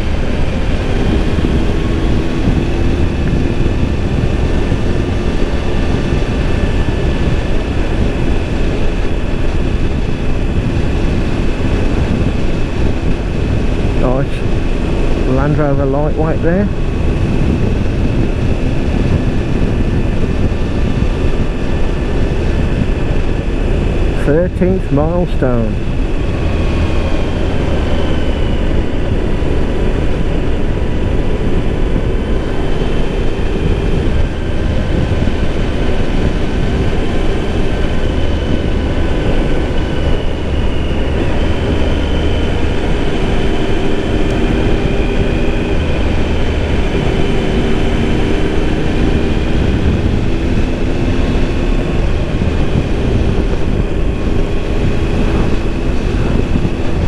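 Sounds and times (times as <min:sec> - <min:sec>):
motorcycle engine running: 0:00.0 - 0:57.0
wind rumble on microphone: 0:00.0 - 0:57.0.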